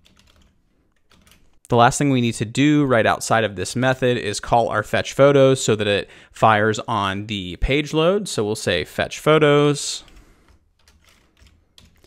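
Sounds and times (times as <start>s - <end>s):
faint keyboard typing: 0.0s - 1.6s, 10.0s - 12.0s.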